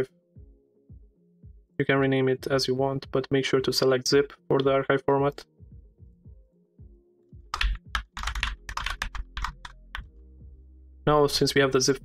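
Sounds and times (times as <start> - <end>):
typing on computer keyboard: 7.5 - 9.8.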